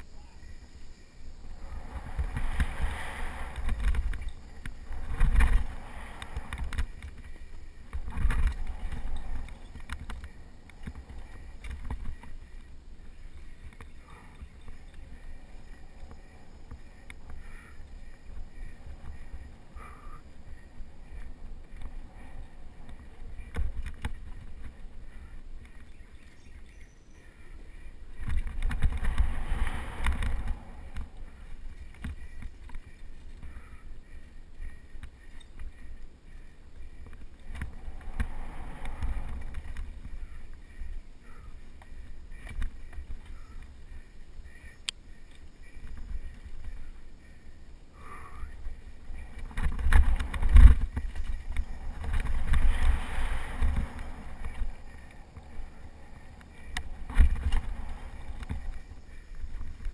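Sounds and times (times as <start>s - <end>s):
wind buffeting microphone: 0.0s - 59.9s
tyre rumble on dirt trail: 1.5s - 19.5s, 48.7s - 59.9s
bike rattling and clicking: 1.6s - 47.4s, 48.5s - 59.9s.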